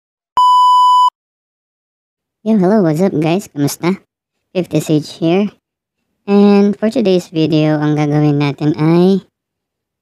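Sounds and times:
electronic beep: 0.4 - 1.1.

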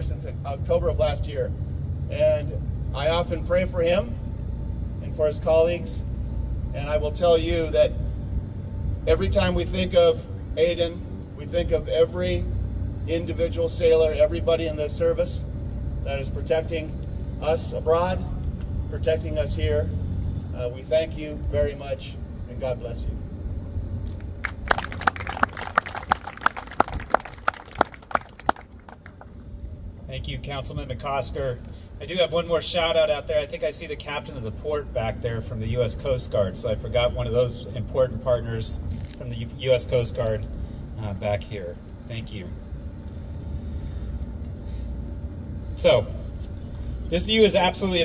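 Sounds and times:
faint steady hum: 0.0 - 48.0
outdoor background rumble: 0.0 - 48.0
audience clapping sparsely: 24.4 - 29.3.

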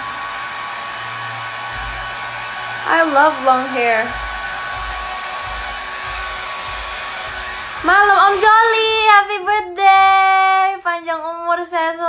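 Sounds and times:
hair dryer blowing: 0.0 - 10.5.

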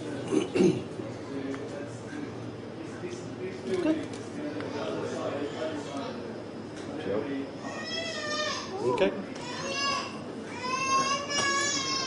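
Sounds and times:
toddler crying: 7.7 - 8.8, 9.4 - 12.0.

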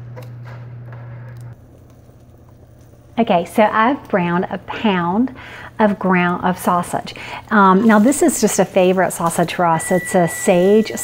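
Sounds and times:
breadcrumbs crackling: 1.6 - 4.9.

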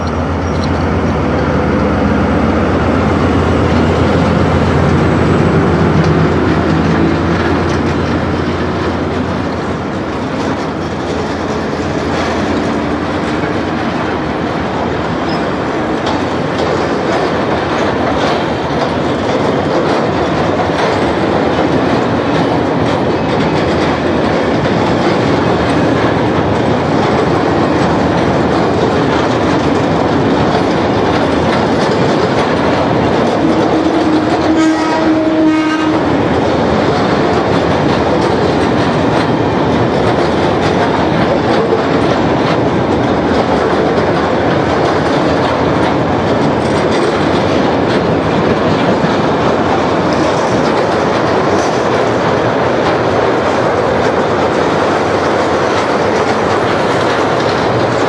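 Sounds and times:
train wheels on rails: 0.0 - 58.0
train horn: 33.5 - 36.2.

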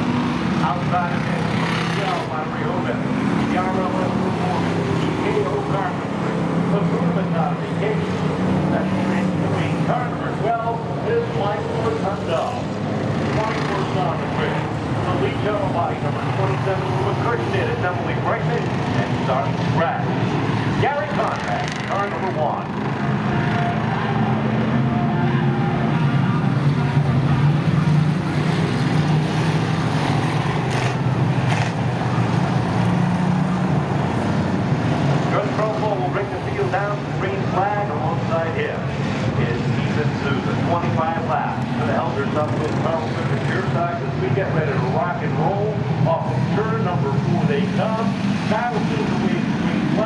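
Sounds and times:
people's voices: 0.0 - 32.5, 35.2 - 50.0
race car engines droning: 0.0 - 50.0.

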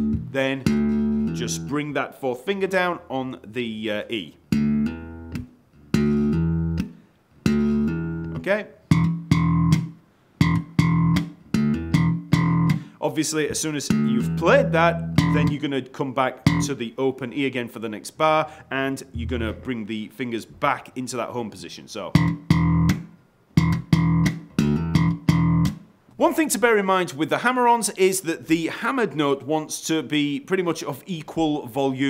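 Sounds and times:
slap bass guitar notes: 0.0 - 1.8, 4.5 - 12.9, 13.5 - 15.6, 16.5 - 16.7, 19.0 - 20.8, 22.2 - 23.0, 23.6 - 25.8.

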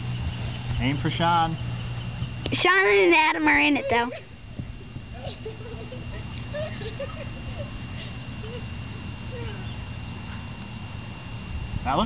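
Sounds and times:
distant voices calling out: 0.0 - 12.0
steady low rumble: 0.0 - 12.0.

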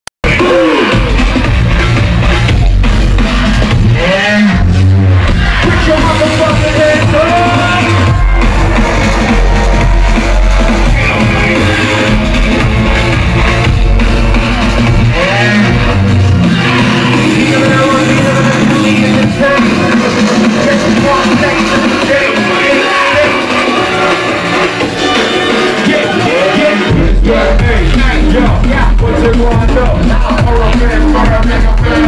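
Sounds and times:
heavy sub-bass: 0.2 - 32.0
loud hip-hop music: 0.2 - 32.0
person rapping into microphone: 3.0 - 32.0.

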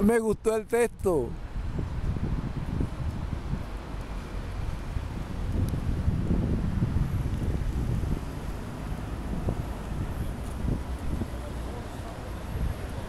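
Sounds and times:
city street traffic rumble: 0.0 - 13.0
wind buffeting microphone: 1.3 - 13.0.

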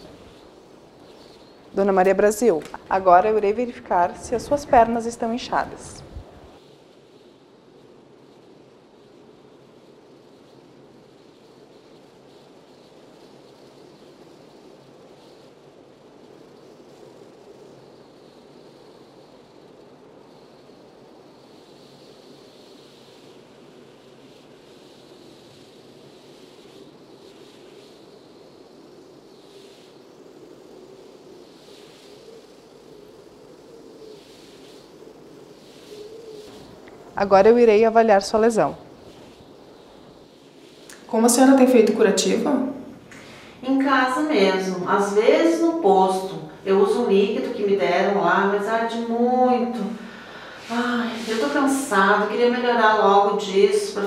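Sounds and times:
faint hiss: 0.0 - 54.0.

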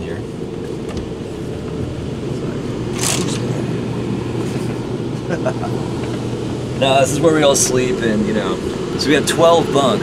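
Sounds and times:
bus machinery humming: 0.0 - 10.0.

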